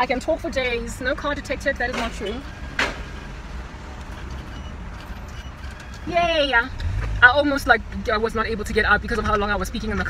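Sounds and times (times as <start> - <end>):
car engine rumble from cabin: 0.0 - 10.0.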